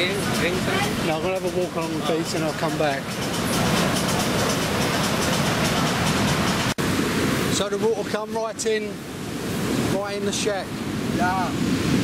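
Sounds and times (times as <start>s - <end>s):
heavy surf breaking on beach: 0.0s - 12.0s.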